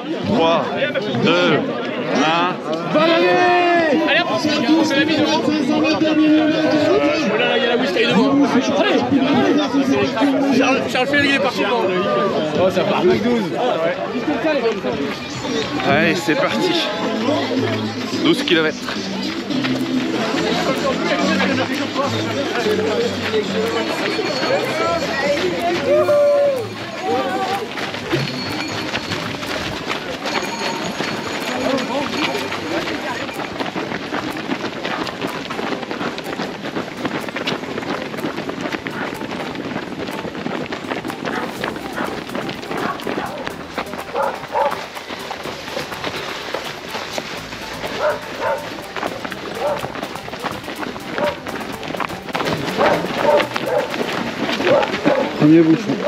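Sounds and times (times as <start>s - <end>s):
runners chattering: 0.0s - 56.0s
runners' footsteps on a road: 0.0s - 56.0s.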